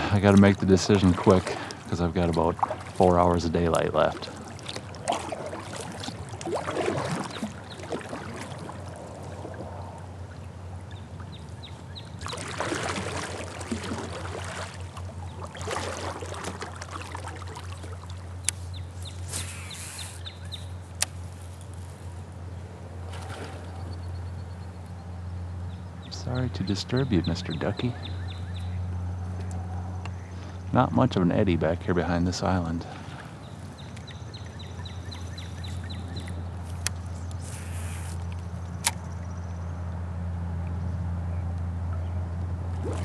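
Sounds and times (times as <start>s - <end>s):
kayak paddle strokes in water: 0.0s - 24.2s, 32.8s - 39.5s, 42.7s - 43.0s
low steady hum: 0.0s - 43.0s.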